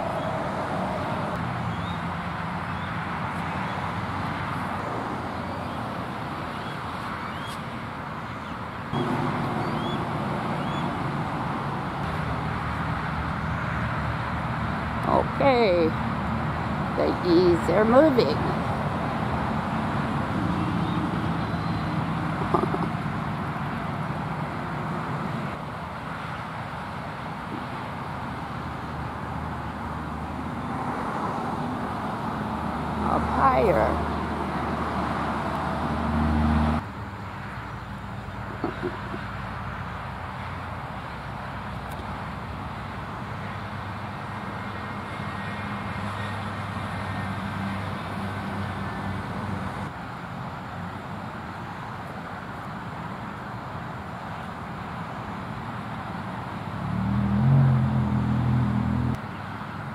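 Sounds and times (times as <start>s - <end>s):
road traffic noise: 0.0s - 59.9s
low engine hum: 8.3s - 50.0s.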